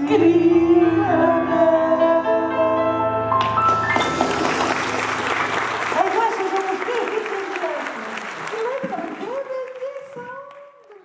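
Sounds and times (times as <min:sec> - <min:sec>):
audience applauding: 0:03.5 - 0:11.0.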